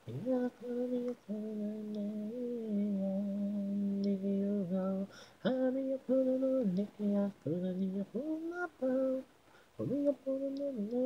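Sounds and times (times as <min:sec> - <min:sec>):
solo singing voice: 0:00.0 - 0:11.0.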